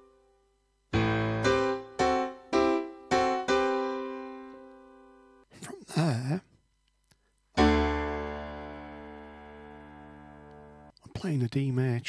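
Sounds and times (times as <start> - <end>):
piano chord ringing: 0.9 - 5.5, 7.6 - 10.9.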